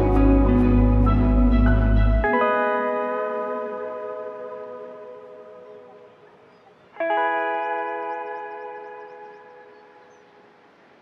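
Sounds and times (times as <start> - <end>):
guitar chord with echo: 0.0 - 6.1.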